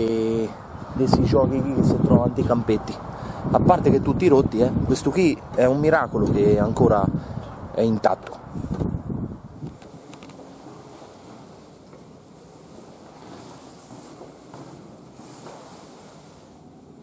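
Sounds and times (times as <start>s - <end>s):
faint steady rushing noise: 0.0s - 17.0s.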